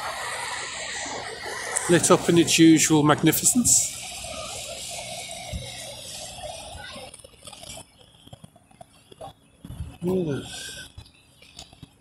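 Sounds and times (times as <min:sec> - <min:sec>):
steady street rush: 0:00.0 - 0:08.3
faint scattered ticks: 0:04.8 - 0:12.0.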